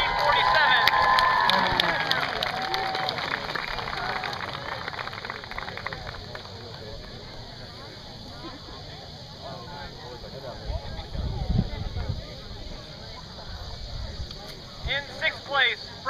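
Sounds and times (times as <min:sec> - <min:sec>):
spectators clapping: 0:00.0 - 0:07.6
low crowd chatter: 0:00.0 - 0:16.0.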